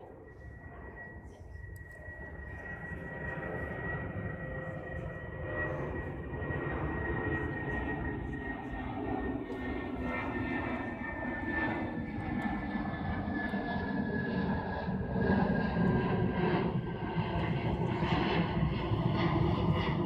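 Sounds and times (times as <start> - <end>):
distant aircraft engine roar: 0.0 - 20.0.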